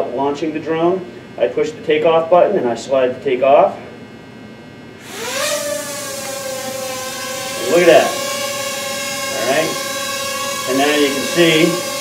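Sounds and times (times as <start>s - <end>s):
drone propellers whining: 5.0s - 12.0s.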